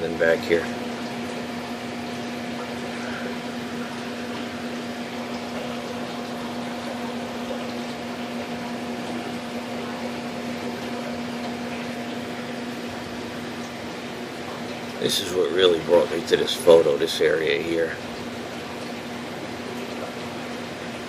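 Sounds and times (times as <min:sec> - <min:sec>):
fan machine humming: 0:00.0 - 0:21.0.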